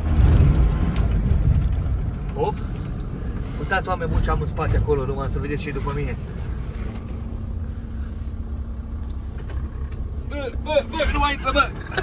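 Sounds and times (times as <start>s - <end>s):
low road rumble: 0.0s - 12.0s
van engine running: 0.0s - 12.0s.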